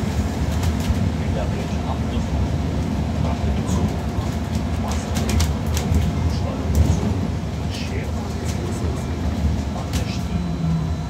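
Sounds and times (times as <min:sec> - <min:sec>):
bus road rumble: 0:00.0 - 0:11.0
body rattles and clicks: 0:03.7 - 0:07.0.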